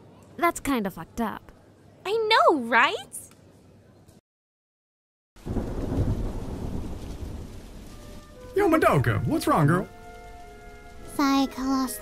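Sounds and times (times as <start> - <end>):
low rumble of thunder: 5.4 - 11.2
steady hiss of rain: 5.4 - 12.0.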